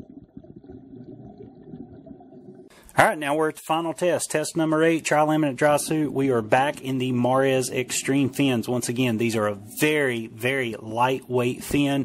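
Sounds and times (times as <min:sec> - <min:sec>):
muffled underwater rumble: 0:00.0 - 0:02.7.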